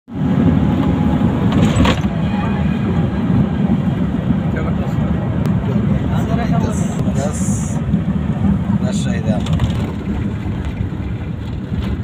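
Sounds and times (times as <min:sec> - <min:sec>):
vehicle on dirt road: 0:00.1 - 0:12.0.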